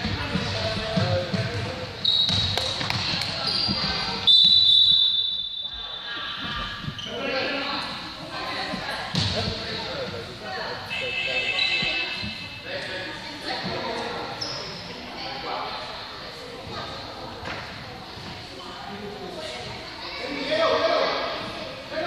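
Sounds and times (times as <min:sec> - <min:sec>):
referee whistle blast: 0:04.2 - 0:05.9.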